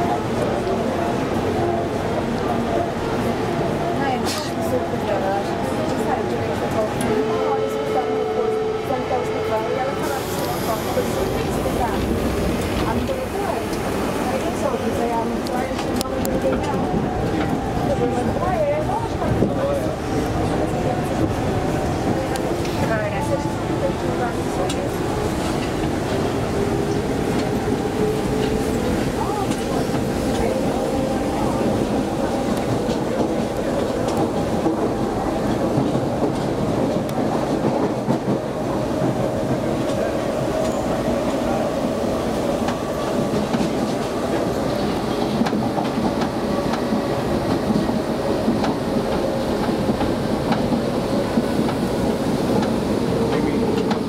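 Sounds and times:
wheels rumbling on rail: 0:00.0 - 0:54.0.

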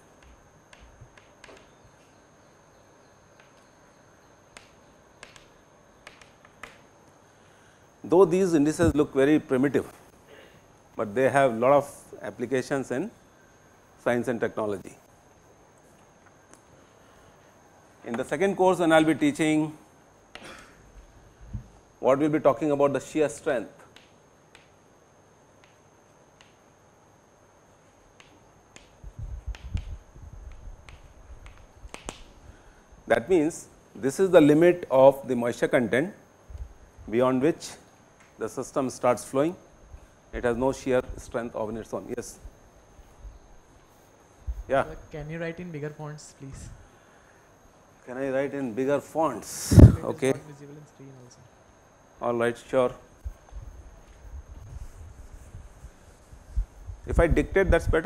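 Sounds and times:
chalk tapping on chalkboard: 0:04.5 - 0:06.8, 0:23.9 - 0:24.8, 0:26.4 - 0:26.6, 0:28.2 - 0:32.2.

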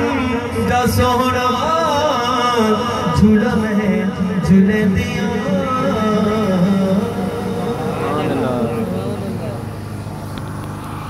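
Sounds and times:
sound system hum: 0:04.2 - 0:11.0.

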